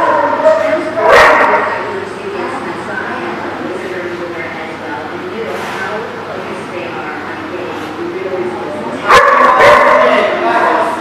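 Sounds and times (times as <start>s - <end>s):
dog barking: 0.0s - 1.7s, 9.1s - 10.8s
murmur of voices: 0.0s - 11.0s.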